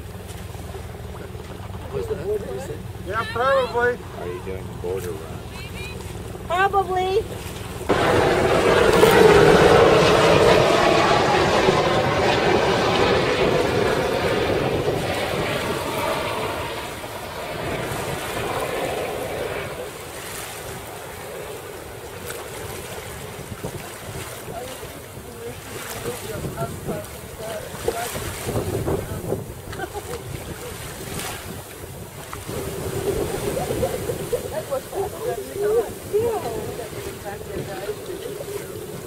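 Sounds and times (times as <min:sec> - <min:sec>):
water rushing past boat: 0:00.0 - 0:39.0
wind on microphone: 0:07.6 - 0:39.0.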